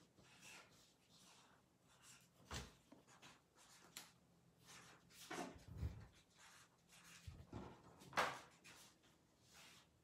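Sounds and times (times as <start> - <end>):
marker scratching on paper: 0.0 - 2.4, 3.0 - 4.0, 4.6 - 7.4, 8.2 - 9.9.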